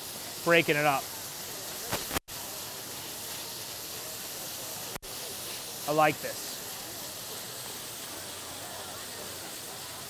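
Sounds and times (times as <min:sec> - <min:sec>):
beef sizzling in a pan: 0:00.0 - 0:10.0.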